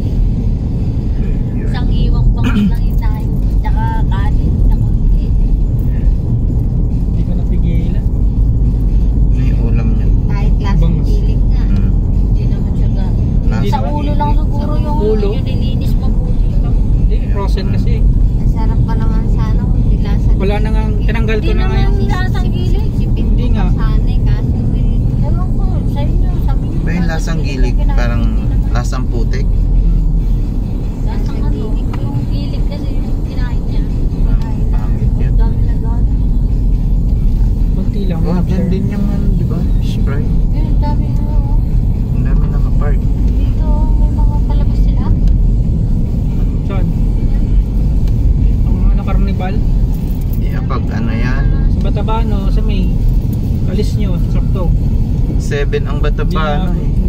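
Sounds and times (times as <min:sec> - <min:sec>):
car road and engine rumble: 0:00.0 - 0:57.0.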